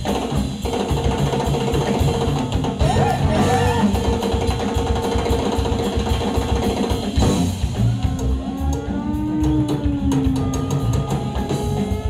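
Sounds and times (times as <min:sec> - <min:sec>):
blues-rock band playing: 0:00.0 - 0:12.0
fast drum and bass groove: 0:00.0 - 0:12.0.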